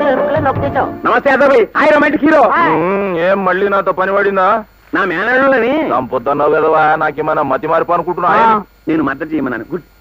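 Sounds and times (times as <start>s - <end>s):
man talking: 0.0s - 9.9s.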